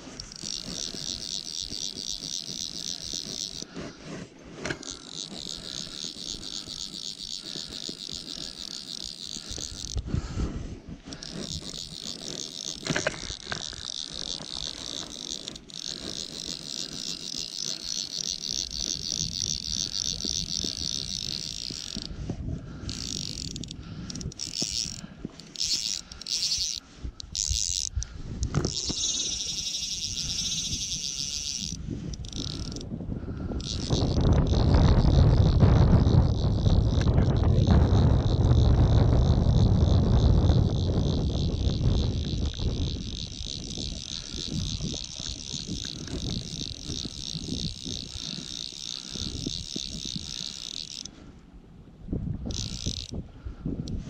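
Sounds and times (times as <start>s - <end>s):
fishing reel ratchet clicking: 0.0s - 51.3s, 52.4s - 54.0s.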